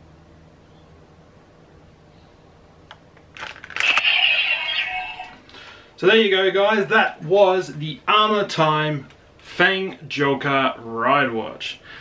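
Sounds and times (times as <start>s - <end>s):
electronic transformation sound effect: 3.8s - 5.4s.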